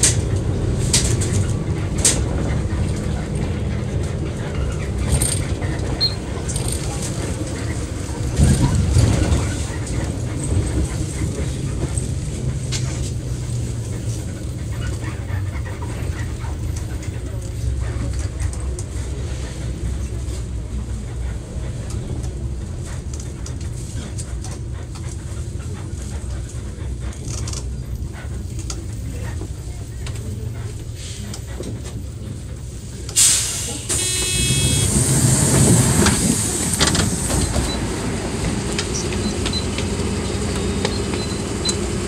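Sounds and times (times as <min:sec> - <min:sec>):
bus engine droning: 0:00.0 - 0:42.0.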